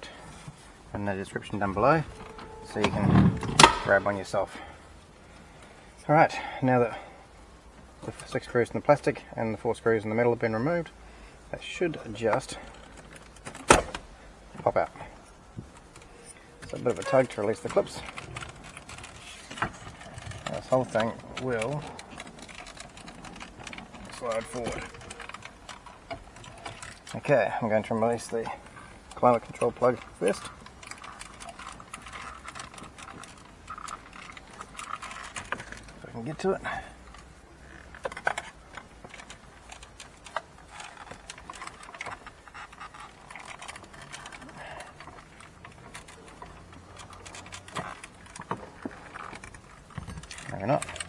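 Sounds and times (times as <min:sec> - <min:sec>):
plastic and metal clicks and rattles: 0:15.6 - 0:27.3, 0:28.1 - 0:36.0, 0:37.1 - 0:51.0.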